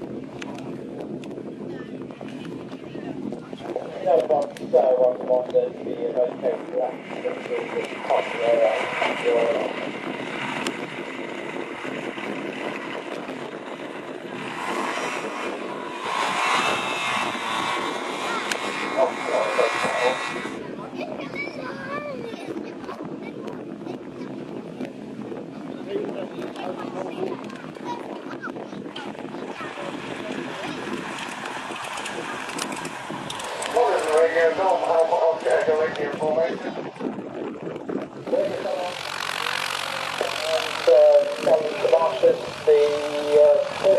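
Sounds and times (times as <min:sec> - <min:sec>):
microlight engine and propeller: 0:00.0 - 0:43.9
man talking: 0:03.6 - 0:09.8, 0:19.0 - 0:20.2, 0:33.7 - 0:36.7, 0:38.2 - 0:39.1, 0:40.2 - 0:43.9.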